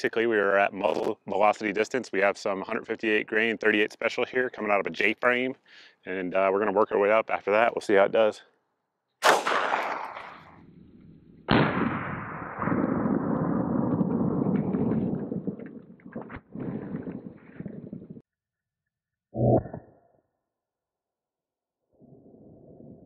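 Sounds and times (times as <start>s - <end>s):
revolver shot crack: 9.2s - 10.6s
slow-motion gunshot boom: 9.2s - 10.7s, 11.4s - 15.8s.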